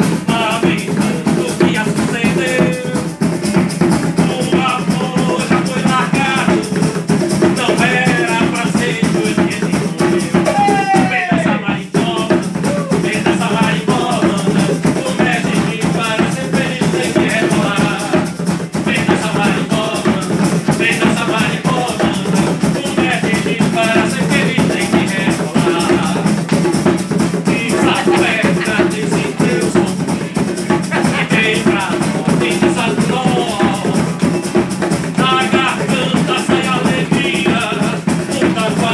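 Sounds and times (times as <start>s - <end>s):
acoustic guitar: 0.0s - 38.9s
bongos: 0.0s - 38.9s
hand drums: 0.0s - 38.9s
shaker beat: 0.0s - 38.9s.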